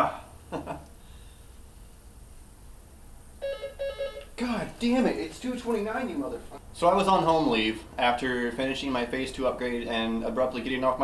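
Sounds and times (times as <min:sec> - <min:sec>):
room hum: 0:00.0 - 0:11.0
short electronic tones: 0:03.4 - 0:04.3.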